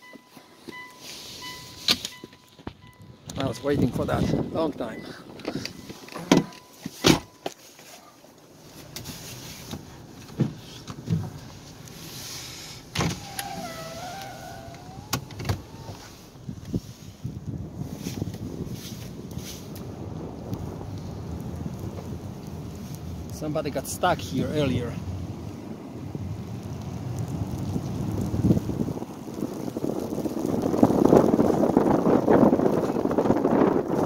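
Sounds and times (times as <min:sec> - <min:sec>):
car engine and tyre noise: 0:00.0 - 0:34.0
wavering whine: 0:13.0 - 0:16.4.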